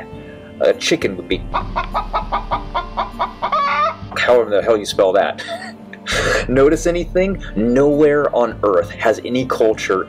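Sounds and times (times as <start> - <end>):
hen clucking: 1.5 - 4.2.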